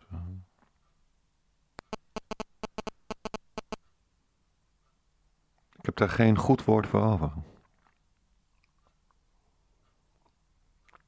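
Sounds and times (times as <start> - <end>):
sharp clicks: 1.8 - 3.8.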